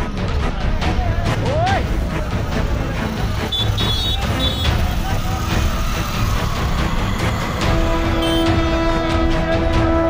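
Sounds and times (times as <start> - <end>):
indistinct voices: 0.8 - 9.6
vehicle engine rumbling: 1.8 - 9.4.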